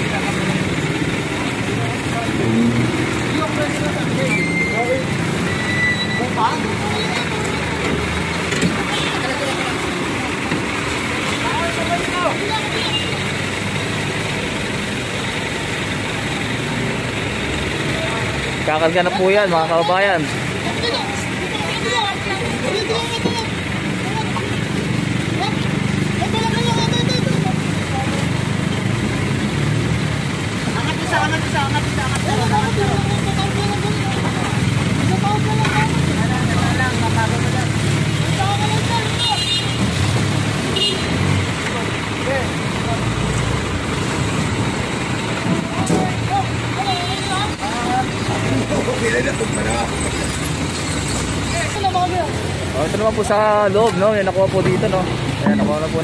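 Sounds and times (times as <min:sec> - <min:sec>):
people talking: 0:00.0 - 0:29.5, 0:30.2 - 0:56.0
street traffic: 0:00.0 - 0:56.0.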